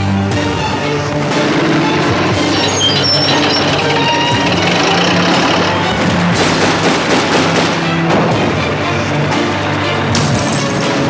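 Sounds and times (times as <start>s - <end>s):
dramatic orchestral score: 0.0s - 11.0s
rapid sharp bangs: 3.4s - 8.6s.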